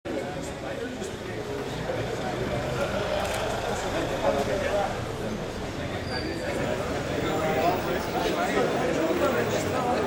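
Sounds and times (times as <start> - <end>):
murmur of people talking: 0.1 - 10.0.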